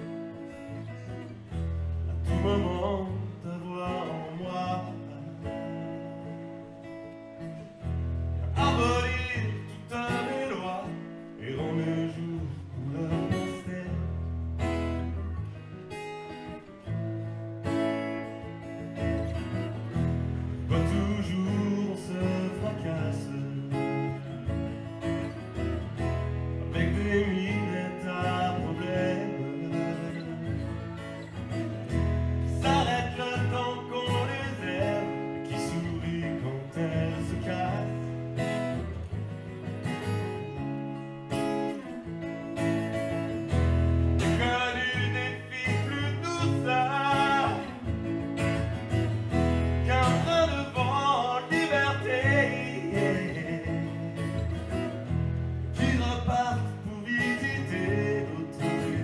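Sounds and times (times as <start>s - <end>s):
man singing: 0.0s - 6.4s, 8.4s - 14.8s, 20.6s - 38.8s, 44.2s - 48.7s, 49.6s - 59.0s
acoustic guitar: 0.0s - 59.0s.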